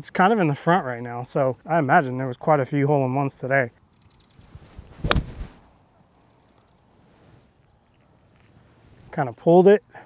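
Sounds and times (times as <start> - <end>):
golf club striking ball: 5.0 - 5.5.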